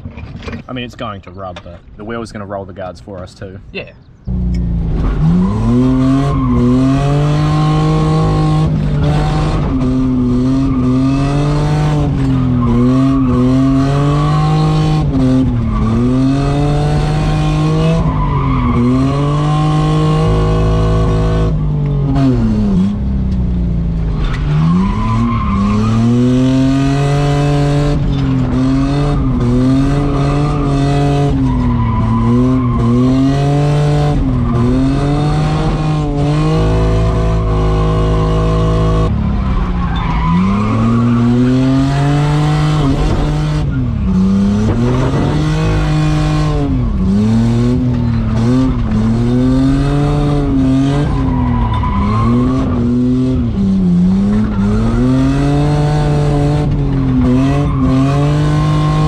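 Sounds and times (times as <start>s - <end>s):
car engine revving: 4.3s - 59.0s
tyre squeal: 39.5s - 42.9s, 50.8s - 53.0s.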